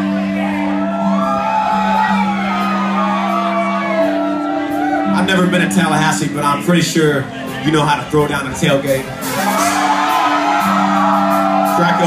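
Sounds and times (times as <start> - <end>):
crowd whooping and shouting: 0.0 - 6.0, 9.0 - 12.0
live country band playing: 0.0 - 12.0.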